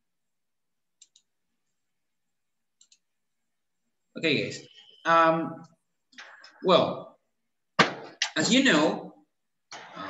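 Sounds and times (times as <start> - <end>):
computer mouse clicks: 1.0 - 1.3, 2.8 - 3.1.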